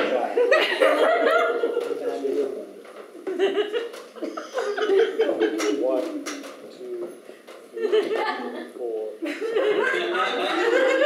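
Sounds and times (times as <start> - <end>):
people laughing: 0.0 - 2.2, 3.2 - 6.1, 7.7 - 11.0.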